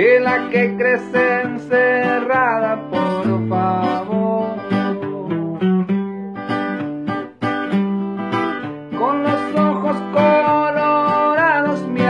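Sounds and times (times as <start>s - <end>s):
acoustic guitar picked melody: 0.0s - 12.0s.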